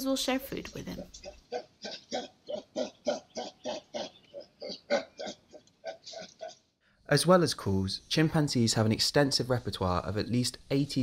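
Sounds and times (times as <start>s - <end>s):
chimpanzee pant-grunting: 1.0s - 6.7s.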